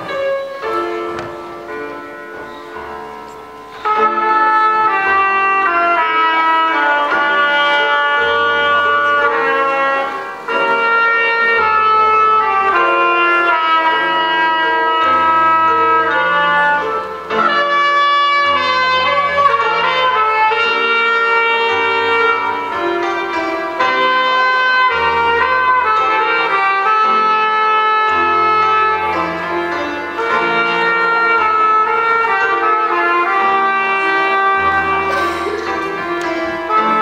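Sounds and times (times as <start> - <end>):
grand piano accompaniment: 0.0 - 37.0
trumpet melody: 0.0 - 37.0.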